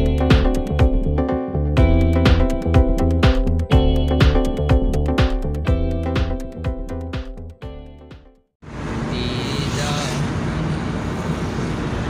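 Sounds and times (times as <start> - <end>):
background music: 0.0 - 8.5
car engine and road noise: 8.6 - 12.0.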